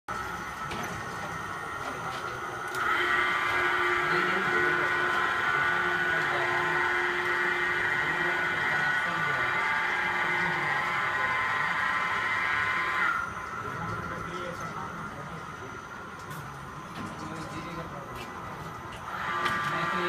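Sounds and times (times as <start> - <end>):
machine motor whine: 0.1 - 20.0.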